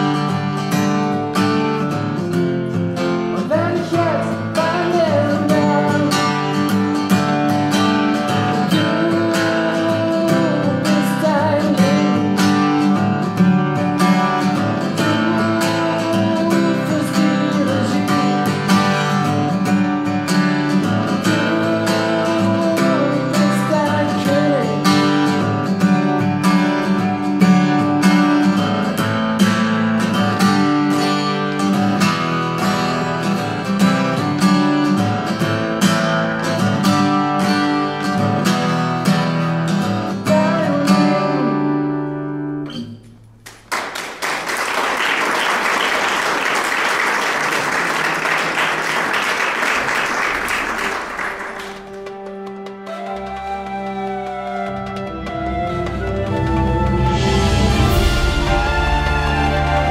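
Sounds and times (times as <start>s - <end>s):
acoustic guitar strumming: 0.0s - 43.4s, 50.3s - 59.9s
audience applauding: 43.4s - 59.9s.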